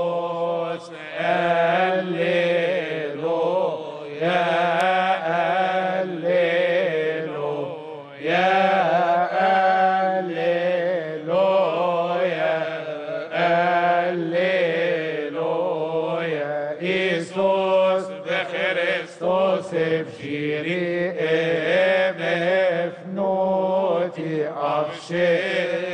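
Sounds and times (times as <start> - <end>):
choir chanting in unison: 0.0 - 25.9.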